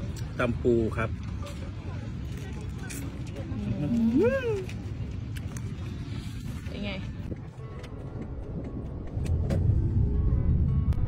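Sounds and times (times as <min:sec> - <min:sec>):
low outdoor rumble: 0:00.0 - 0:11.0
man humming while eating: 0:03.7 - 0:04.7.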